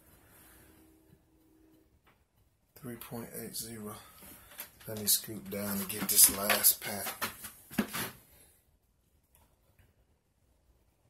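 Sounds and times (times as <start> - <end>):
person speaking: 2.8 - 4.2, 4.8 - 8.1.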